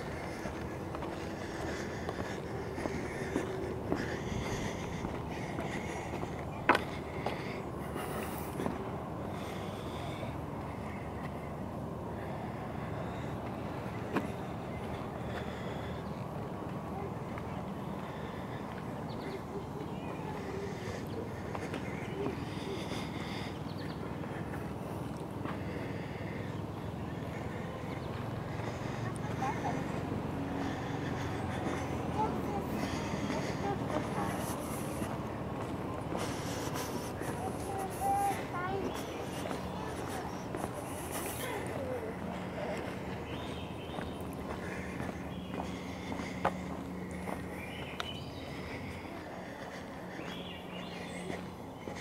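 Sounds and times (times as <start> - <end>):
footsteps on wooden planks: 0.0 - 8.9, 30.6 - 52.0
faint indistinct voices: 0.0 - 52.0
outdoor background noise: 0.0 - 52.0.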